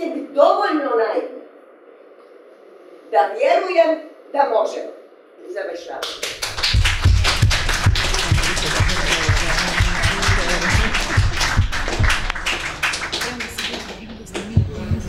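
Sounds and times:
crowd clapping: 0:06.0 - 0:15.0
rhythmic music: 0:06.4 - 0:15.0
low thumps: 0:06.6 - 0:12.8.

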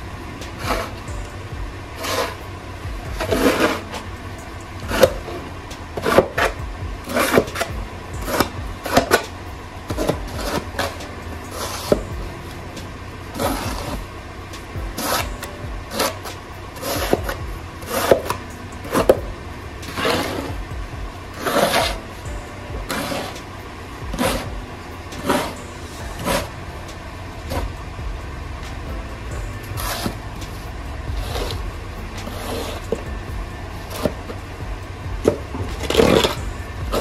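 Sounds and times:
steady low rumble: 0:00.0 - 0:37.0
snow shovel scraping snow: 0:00.5 - 0:01.1, 0:01.9 - 0:02.6, 0:03.2 - 0:04.1, 0:04.8 - 0:09.4, 0:10.0 - 0:12.1, 0:13.2 - 0:14.1, 0:14.9 - 0:19.2, 0:19.9 - 0:20.6, 0:21.4 - 0:22.0, 0:22.8 - 0:26.6, 0:29.2 - 0:33.1, 0:33.8 - 0:34.6, 0:35.2 - 0:37.0.

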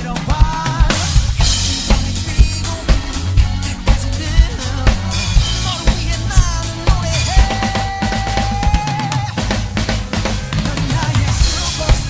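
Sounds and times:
drum kit playing: 0:00.0 - 0:12.0
recorded song: 0:00.0 - 0:12.0.

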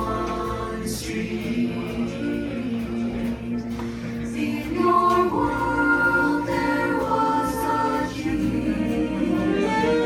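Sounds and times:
vocal ensemble singing harmony: 0:00.0 - 0:10.0.

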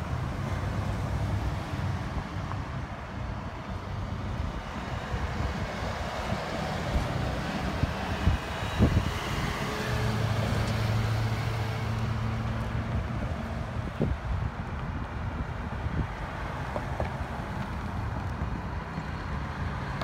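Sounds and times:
vehicles driving past: 0:00.0 - 0:20.0
wind buffeting microphone: 0:01.4 - 0:20.0.

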